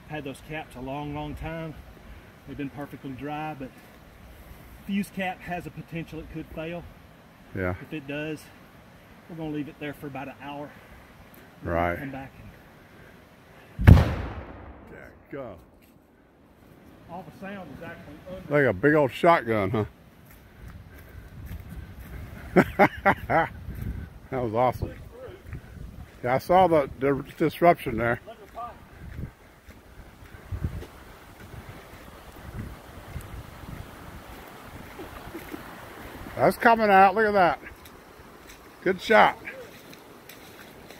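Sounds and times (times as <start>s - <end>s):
rumble after explosion: 13.8s - 15.2s
explosive charge bang: 13.8s - 15.3s
footsteps on gravel road: 20.2s - 22.7s, 23.7s - 24.0s, 24.8s - 36.4s, 37.6s - 40.9s.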